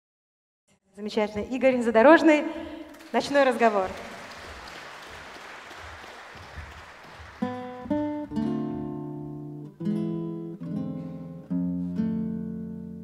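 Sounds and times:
audience applause: 0:02.9 - 0:08.2
acoustic guitar plucked and strummed: 0:07.4 - 0:13.0.

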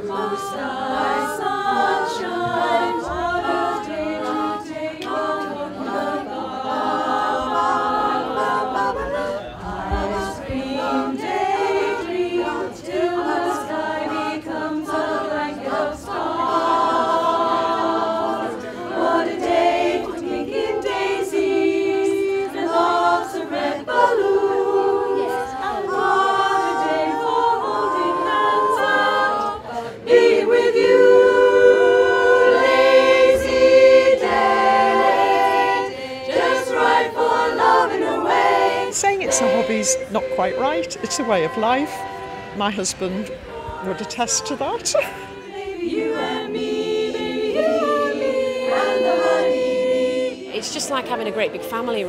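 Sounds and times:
barbershop singing in harmony: 0:00.0 - 0:52.0.

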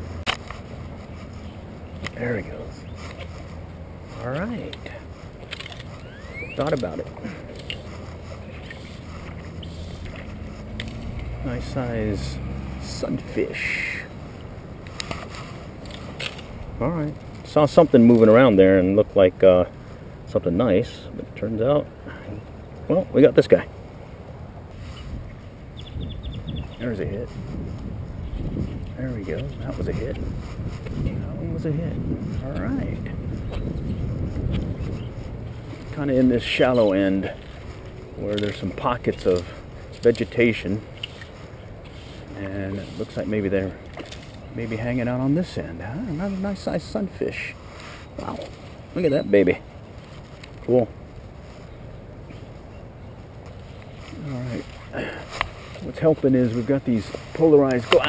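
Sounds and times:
steady low rumble: 0:00.0 - 0:58.0
wind buffeting microphone: 0:00.0 - 0:58.0.

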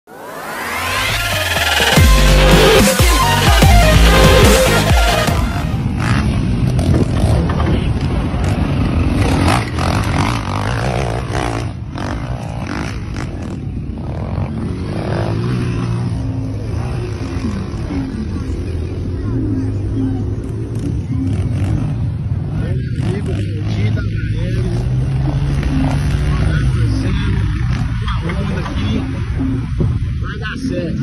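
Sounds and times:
people's voices: 0:16.7 - 0:31.0.

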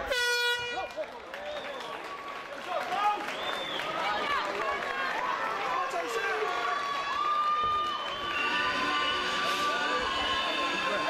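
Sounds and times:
horn blast: 0:00.0 - 0:00.9
crowd voices and shouts: 0:00.0 - 0:11.0.

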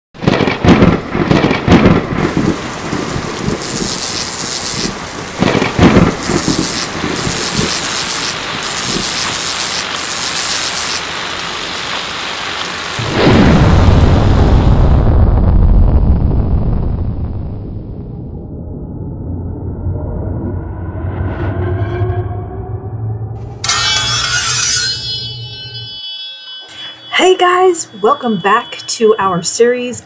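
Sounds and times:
deep thunder boom: 0:00.2 - 0:03.8, 0:05.2 - 0:07.3, 0:13.0 - 0:21.3
heavy rain: 0:00.2 - 0:17.2
thunder cracking and rumbling: 0:00.2 - 0:20.9.

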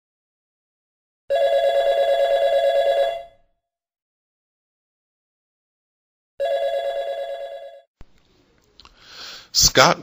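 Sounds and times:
telephone ringing: 0:01.3 - 0:03.4, 0:06.4 - 0:07.9.

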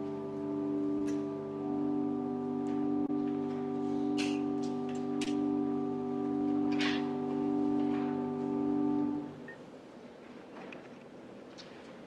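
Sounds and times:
church organ sustained chord: 0:00.0 - 0:09.5.

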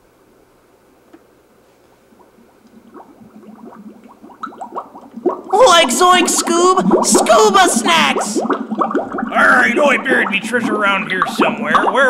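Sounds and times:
underwater bubbling blips: 0:02.1 - 0:12.0.

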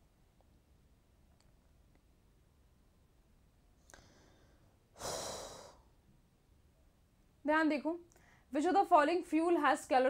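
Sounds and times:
breath out: 0:03.8 - 0:05.9.

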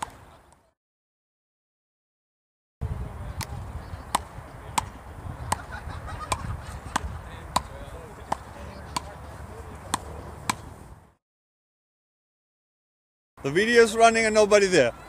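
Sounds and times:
paddles hitting a ball: 0:03.4 - 0:05.7, 0:06.3 - 0:10.8.

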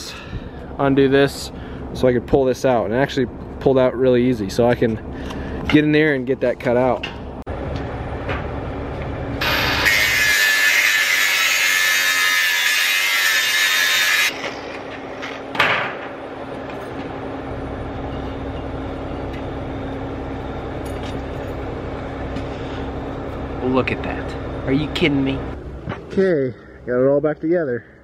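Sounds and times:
power tool running: 0:09.3 - 0:15.6.

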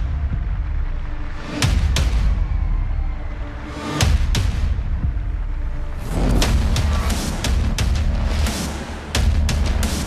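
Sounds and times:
dramatic music with heavy bass: 0:00.0 - 0:10.0
sharp booming hits: 0:06.0 - 0:07.9.

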